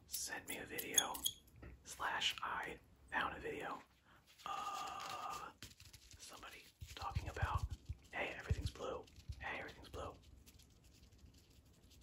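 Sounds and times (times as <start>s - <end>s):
close-up whispering: 0.2s - 1.2s, 1.8s - 5.6s, 6.2s - 10.3s
sponge rubbed at microphone: 4.3s - 12.0s.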